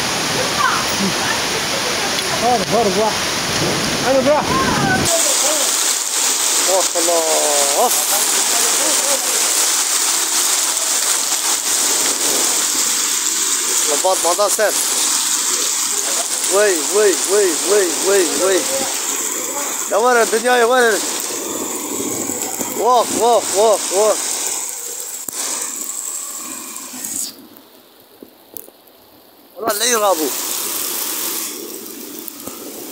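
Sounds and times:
hail and rain pouring down: 0:00.0 - 0:32.9.

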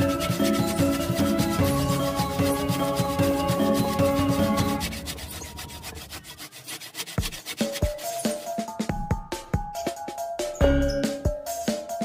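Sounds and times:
hand saw cutting wood: 0:00.0 - 0:08.8
background music: 0:00.0 - 0:12.0.

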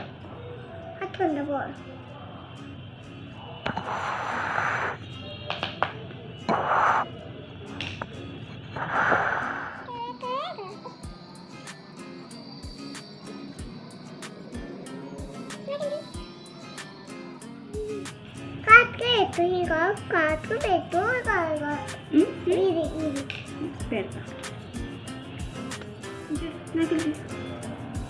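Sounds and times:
short hissing bursts: 0:03.7 - 0:05.0, 0:06.5 - 0:07.1, 0:08.8 - 0:09.9
music with thumping beat: 0:12.6 - 0:15.6, 0:22.8 - 0:28.0.

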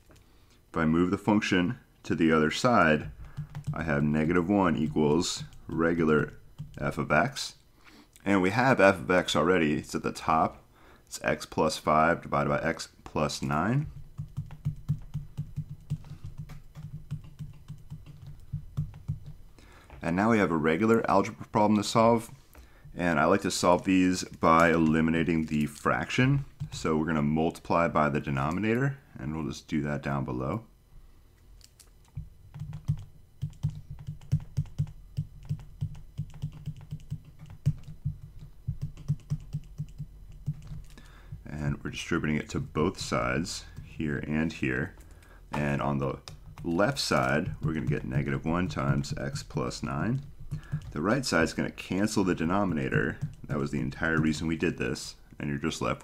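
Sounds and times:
stylus tapping on tablet screen: 0:13.9 - 0:19.4, 0:50.3 - 0:51.0.

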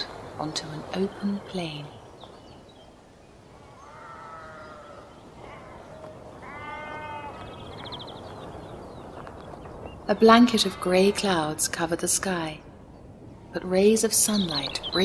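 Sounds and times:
sheep bleating: 0:05.4 - 0:07.5.

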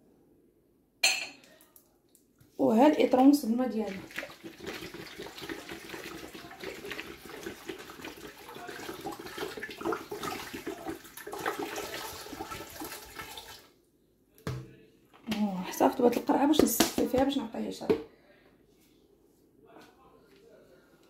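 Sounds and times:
water pouring into a metal pot: 0:03.5 - 0:13.7.

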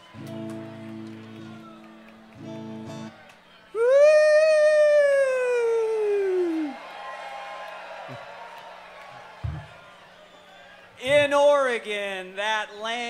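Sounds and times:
crowd noise: 0:00.0 - 0:13.0
man yelling through loudspeakers: 0:11.0 - 0:13.0.

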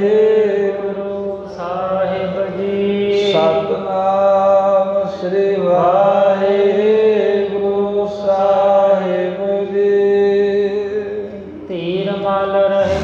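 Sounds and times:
man chanting: 0:00.0 - 0:13.0
low drone: 0:11.1 - 0:13.0.

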